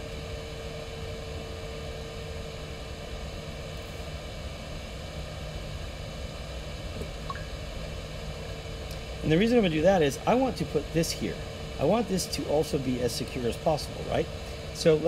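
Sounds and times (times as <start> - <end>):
room hiss and hum: 0.0 - 15.0.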